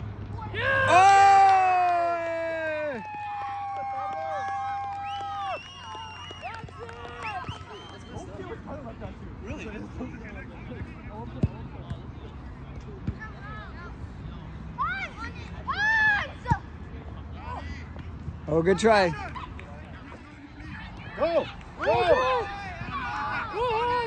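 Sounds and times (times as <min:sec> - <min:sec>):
people shouting outdoors: 0:00.4 - 0:05.0, 0:21.0 - 0:24.0
loud drawn-out yell: 0:00.5 - 0:04.9.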